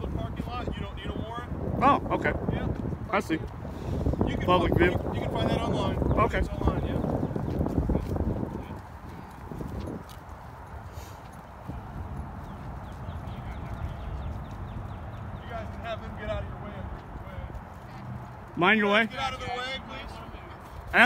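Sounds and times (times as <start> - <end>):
wind rumble on microphone: 0.0 - 21.0
footsteps on grass and pavement: 2.6 - 4.3, 5.0 - 21.0.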